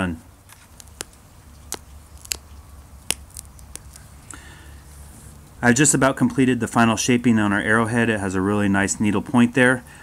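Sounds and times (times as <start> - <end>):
sharp clicks of flakes popping: 0.5 - 4.1.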